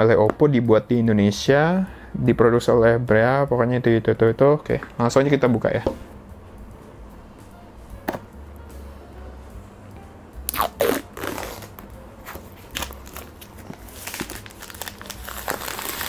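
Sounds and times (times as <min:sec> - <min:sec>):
plastic wrap tearing and crinkling: 0:10.5 - 0:16.0
scissors cutting plastic wrap: 0:10.5 - 0:16.0.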